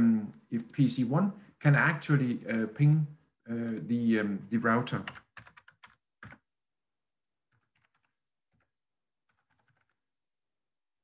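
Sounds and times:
computer keyboard keystrokes: 5.0s - 6.4s, 7.5s - 8.7s, 9.3s - 10.0s.

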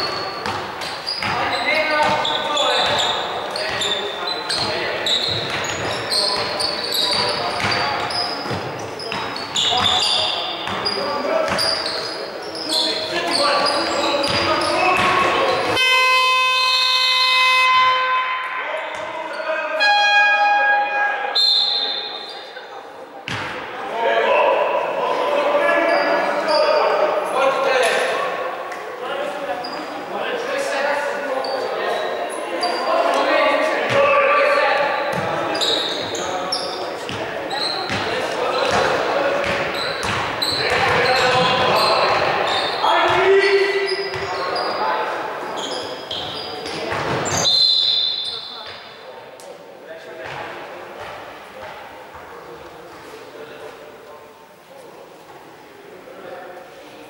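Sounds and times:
players calling out: 0.0s - 22.6s
horn-like buzzer tone: 15.7s - 18.5s, 19.8s - 21.0s
basketball bouncing on wooden floor: 39.4s - 41.7s.

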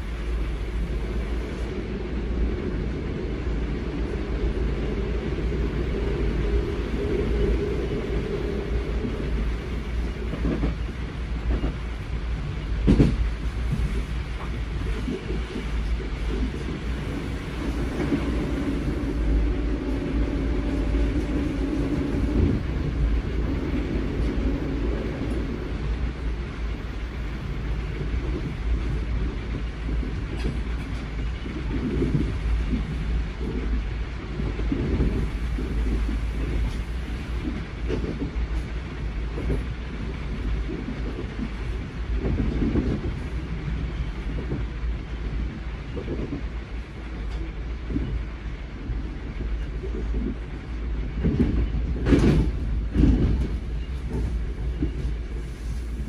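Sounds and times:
passing train hum: 0.0s - 56.0s
train wheels rumbling on rail: 0.0s - 56.0s.

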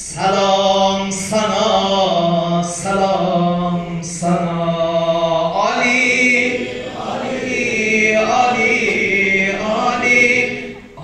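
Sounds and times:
man chanting a hymn: 0.0s - 11.0s.

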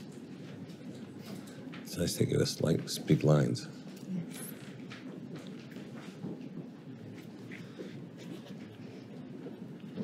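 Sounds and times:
low room murmur: 0.0s - 10.0s.

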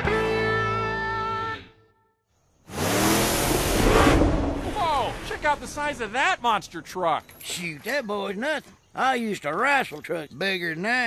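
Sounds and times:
monster truck engine revving: 2.6s - 5.4s.

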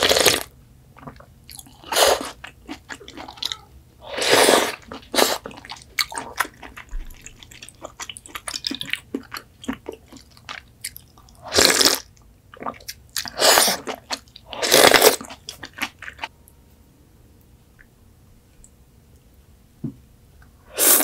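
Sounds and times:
slurping broth and noodles: 0.0s - 3.3s, 4.1s - 6.6s, 11.4s - 12.0s, 12.6s - 15.8s, 20.7s - 21.0s
wet chewing clicks: 4.8s - 11.4s.

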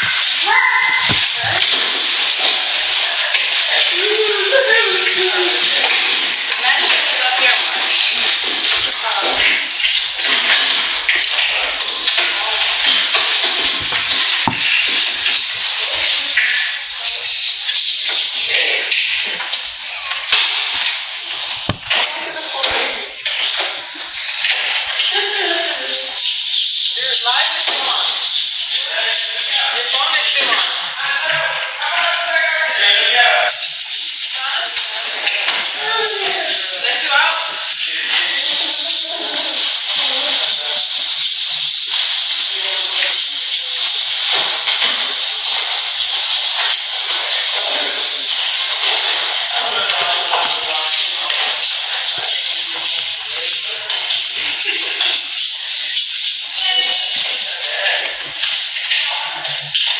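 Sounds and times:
unclear voices: 0.0s - 15.4s, 18.4s - 26.2s, 26.9s - 41.2s, 41.9s - 59.9s
music: 0.0s - 59.9s.

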